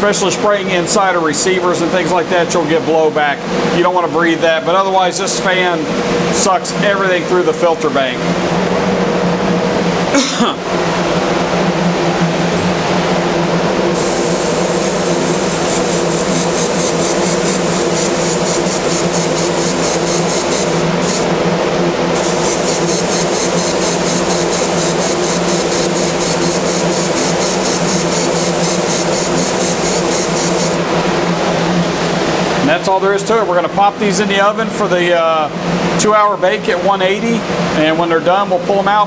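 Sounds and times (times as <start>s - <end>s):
exhaust fan hum: 0.0s - 38.9s
air spray gun hissing: 14.0s - 21.3s, 22.2s - 30.8s.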